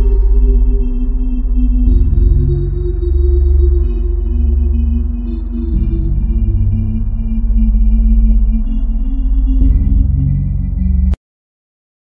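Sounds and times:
dark ambient music: 0.0s - 11.2s.

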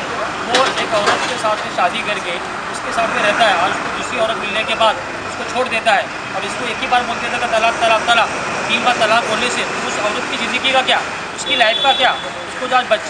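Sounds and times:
man talking: 0.0s - 13.0s
street traffic hum: 0.0s - 13.0s.

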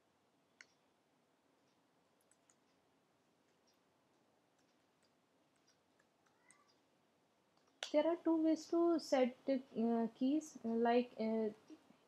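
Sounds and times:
computer clicks: 1.7s - 2.8s.

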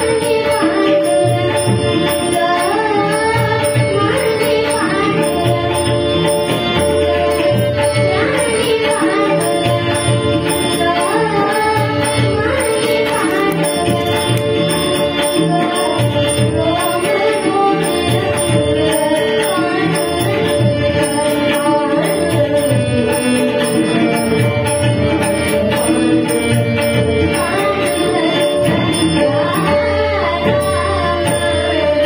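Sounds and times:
girl singing: 0.0s - 32.0s
hand drums playing rhythm: 0.0s - 32.0s
harmonium chords: 0.0s - 32.0s.

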